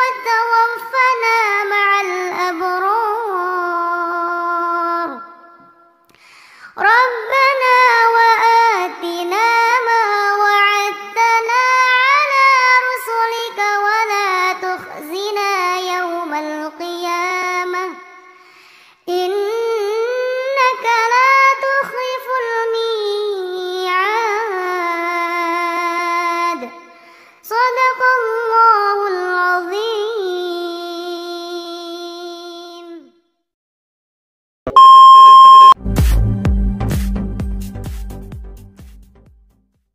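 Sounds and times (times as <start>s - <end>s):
girl reciting melodically: 0.0s - 5.4s, 6.7s - 18.0s, 19.1s - 33.1s.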